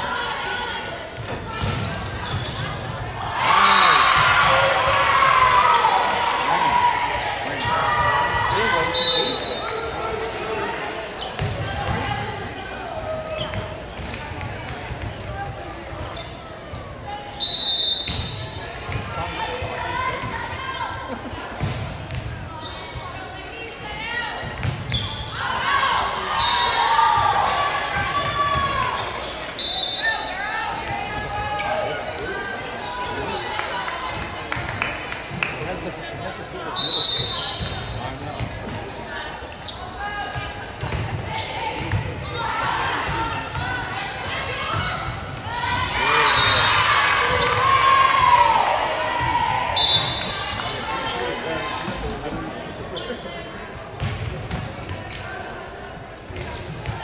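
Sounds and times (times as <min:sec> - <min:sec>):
players shouting: 0:03.0 - 0:11.0
referee's whistle blasts: 0:03.6 - 0:04.2, 0:08.5 - 0:09.6, 0:17.3 - 0:18.6, 0:26.4 - 0:26.8, 0:36.7 - 0:37.9, 0:46.1 - 0:46.8, 0:49.7 - 0:50.4
spectators cheering: 0:45.5 - 0:51.6.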